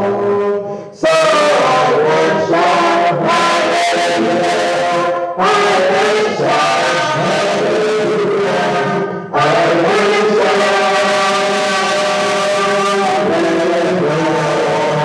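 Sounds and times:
man chanting a hymn: 0.0 - 15.0
short breaths: 0.6 - 1.0.

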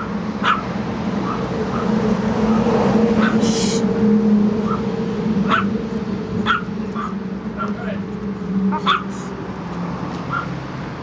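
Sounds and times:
puppy yipping: 3.2 - 3.4, 8.7 - 9.1, 10.3 - 10.6.

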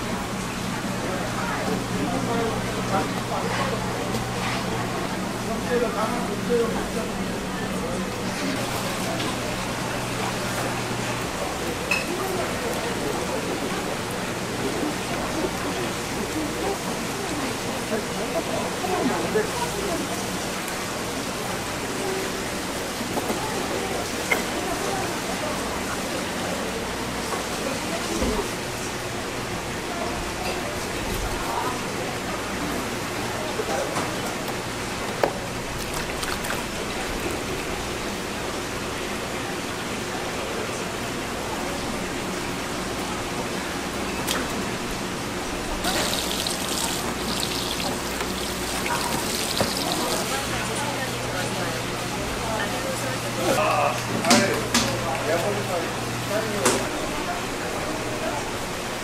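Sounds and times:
hubbub of voices: 0.0 - 59.0
water sloshing in a basin: 35.0 - 38.1, 45.7 - 50.8.

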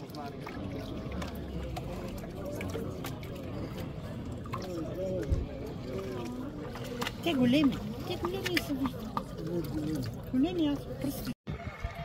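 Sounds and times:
crowd chatter: 0.0 - 12.0
water sloshing and splashing: 0.0 - 12.0.

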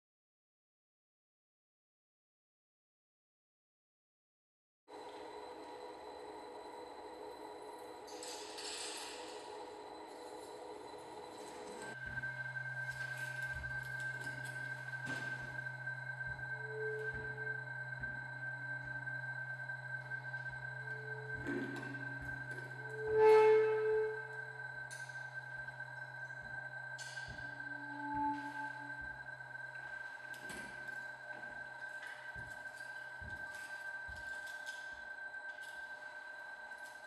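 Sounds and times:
low steady hum: 4.9 - 37.0
steady pure high tone: 4.9 - 37.0
low electronic drone: 5.1 - 37.0.

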